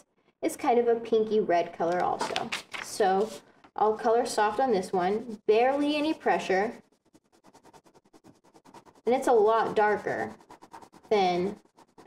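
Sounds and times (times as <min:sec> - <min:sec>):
oil pastel strokes on paper: 0:03.0 - 0:12.0.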